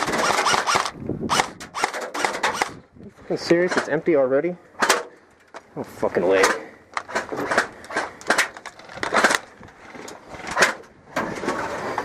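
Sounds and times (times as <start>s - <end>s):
clicks and knocks of toy gun: 6.4s - 9.8s.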